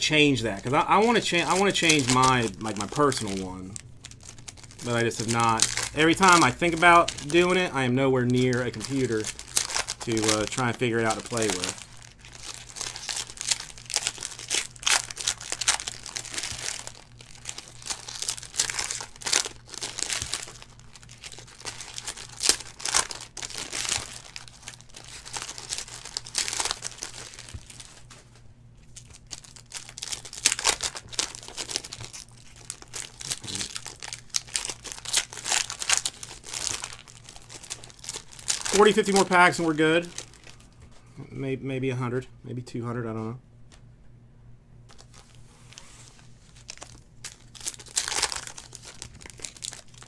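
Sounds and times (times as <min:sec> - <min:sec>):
foil wrappers tearing and crumpling: 0:00.4 - 0:40.7, 0:44.9 - 0:50.0.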